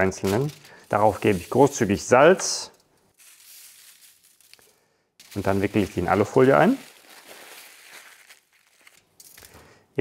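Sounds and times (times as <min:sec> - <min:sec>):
salt grains pattering on foil: 0:00.0 - 0:09.7.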